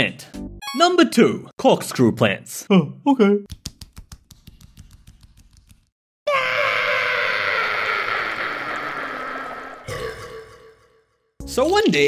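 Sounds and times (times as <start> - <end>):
cartoon cry falling in pitch: 6.3 - 10.0.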